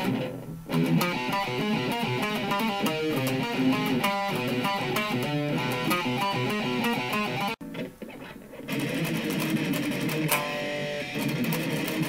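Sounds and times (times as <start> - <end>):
electric guitar riff: 0.0 - 12.0.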